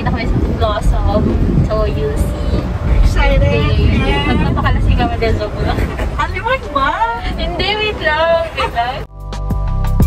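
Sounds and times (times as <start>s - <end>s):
car cabin rumble: 0.0s - 9.0s
women chatting: 0.0s - 9.1s.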